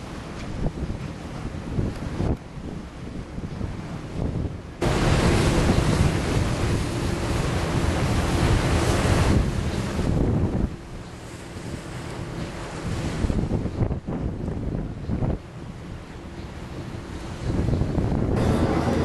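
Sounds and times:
water rushing along boat hull: 0.0s - 19.0s
wind buffeting microphone: 0.0s - 19.0s.

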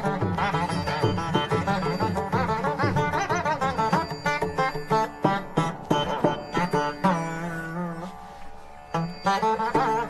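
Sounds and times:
plucked veena notes: 0.0s - 10.0s.

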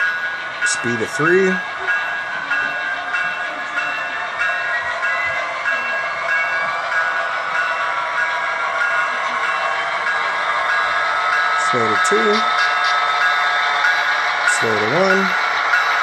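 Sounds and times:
bell ringing: 0.0s - 16.0s.

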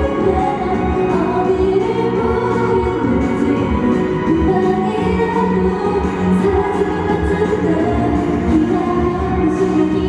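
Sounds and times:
pop dance song over sound system: 0.0s - 10.0s
women singing: 0.0s - 10.0s.

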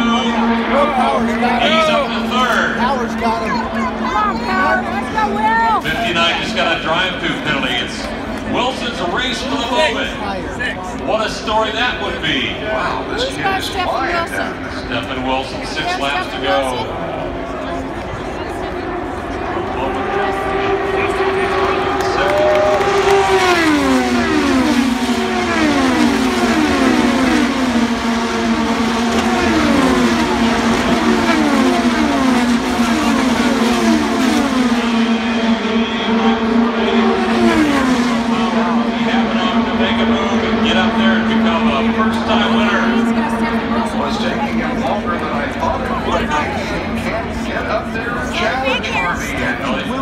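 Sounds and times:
race car engines passing: 0.0s - 50.0s.

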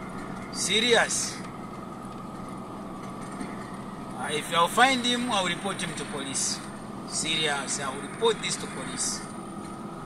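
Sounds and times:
vehicle engine and road noise: 0.0s - 10.0s.

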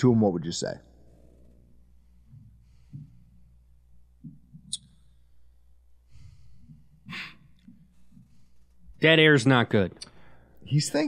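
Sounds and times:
steady low hum: 0.0s - 11.0s
person sighing: 7.0s - 7.6s.

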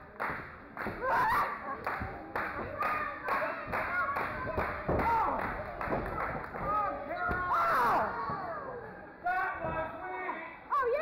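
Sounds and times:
audience clapping in rhythm: 0.0s - 1.1s, 1.8s - 6.8s.

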